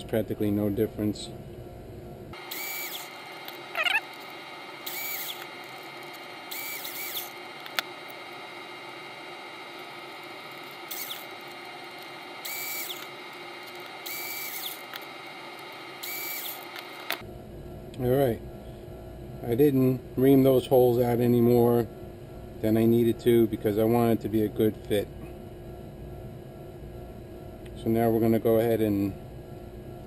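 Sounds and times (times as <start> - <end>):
cordless drill whining: 2.4 - 17.2.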